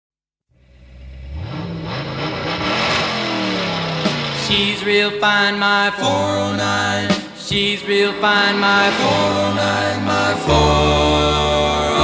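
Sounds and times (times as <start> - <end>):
car engine revving: 0.6 - 12.0.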